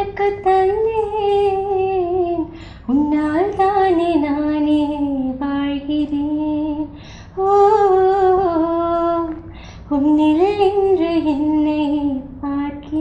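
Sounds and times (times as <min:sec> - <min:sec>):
woman singing unaccompanied: 0:00.0 - 0:13.0.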